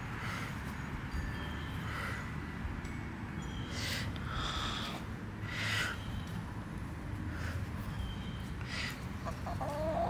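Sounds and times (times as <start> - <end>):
chicken clucking: 9.2 - 10.0.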